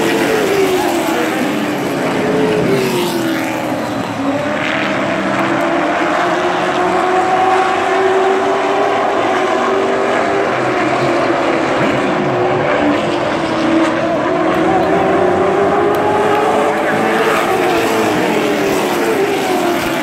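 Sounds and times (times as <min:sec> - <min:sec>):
race car engines: 0:00.0 - 0:20.0.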